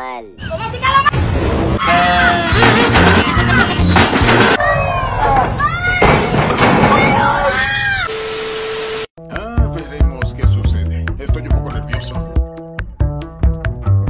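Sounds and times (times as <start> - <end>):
person screaming in fright: 1.8 - 2.6
loud music: 1.8 - 4.6.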